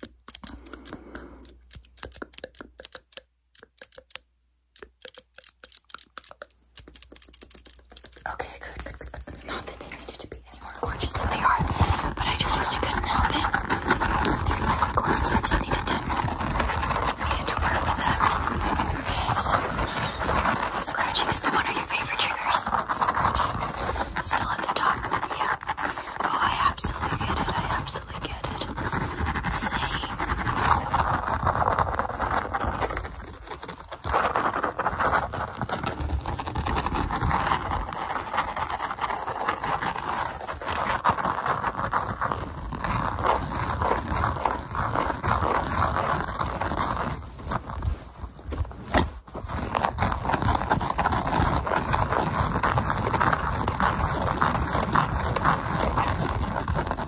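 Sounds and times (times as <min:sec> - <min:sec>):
fingers rubbing and scratching: 0:00.0 - 0:04.2, 0:04.8 - 0:57.0
whispered mouth sounds: 0:08.0 - 0:13.6, 0:14.2 - 0:16.1, 0:17.0 - 0:31.0.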